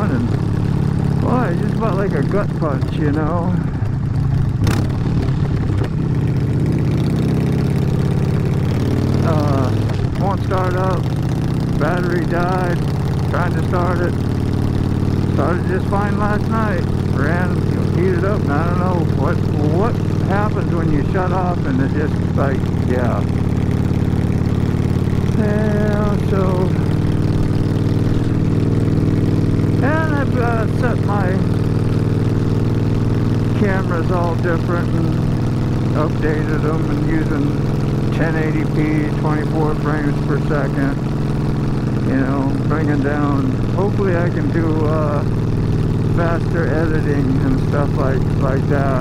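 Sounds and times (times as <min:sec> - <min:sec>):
motorcycle engine running: 0:00.0 - 0:49.0.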